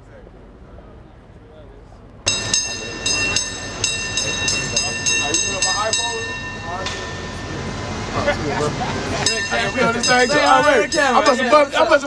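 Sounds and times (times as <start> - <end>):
street voices: 0.0 - 12.0
bell clanging: 2.3 - 12.0.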